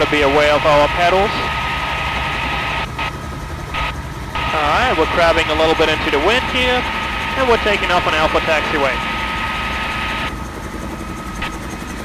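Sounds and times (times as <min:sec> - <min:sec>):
helicopter engine and rotor: 0:00.0 - 0:12.0.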